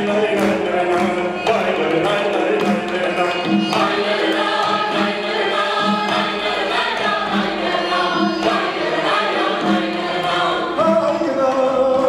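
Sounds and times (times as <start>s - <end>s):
chorus singing: 0.0s - 12.0s
men singing into microphones: 0.0s - 12.0s
steady beat: 0.0s - 12.0s.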